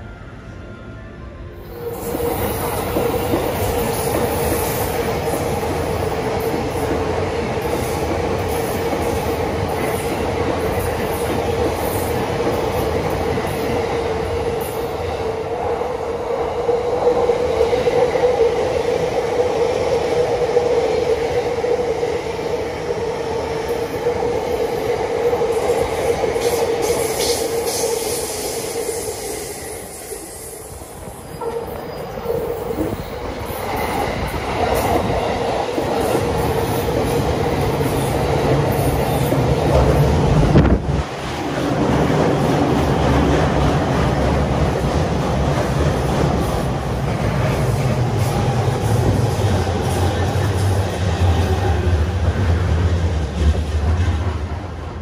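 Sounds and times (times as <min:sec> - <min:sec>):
trains running past on tracks: 0:00.0 - 0:55.0.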